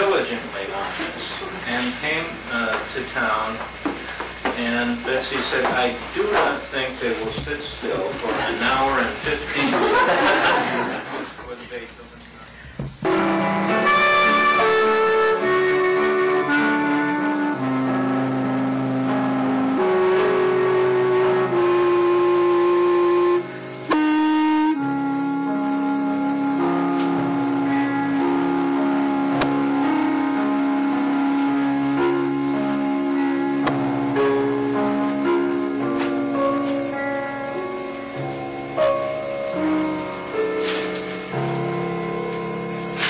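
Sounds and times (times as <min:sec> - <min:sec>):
solo clarinet slow melody: 0:13.0 - 0:43.0.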